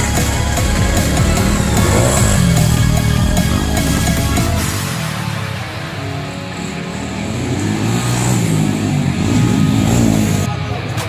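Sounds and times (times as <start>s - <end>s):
dirt bike engine revving: 0.0s - 10.5s.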